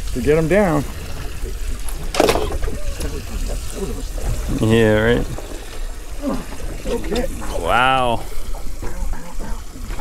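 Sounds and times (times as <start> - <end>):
water trickling and sloshing: 0.0 - 10.0.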